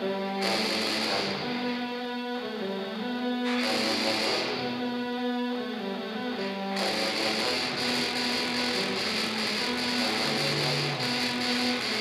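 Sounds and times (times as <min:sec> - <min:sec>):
brass quartet playing metal music: 0:00.4 - 0:01.6, 0:03.4 - 0:04.8, 0:06.8 - 0:12.0
long low tuba notes: 0:06.7 - 0:12.0.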